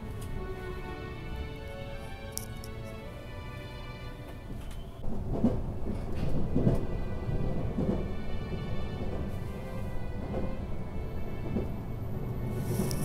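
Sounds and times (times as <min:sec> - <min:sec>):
background music: 0:00.0 - 0:13.0
train rumble inside cabin: 0:00.0 - 0:13.0.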